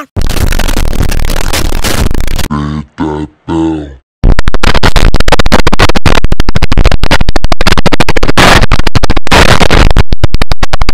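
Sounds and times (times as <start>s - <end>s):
harsh distorted noise: 0.0s - 2.6s, 4.2s - 10.9s
short grunting vocal sounds: 2.5s - 4.0s.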